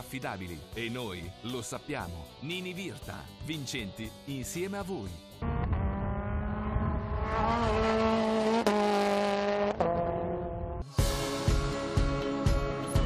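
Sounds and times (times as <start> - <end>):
go-kart engine revving high: 5.4 - 10.8.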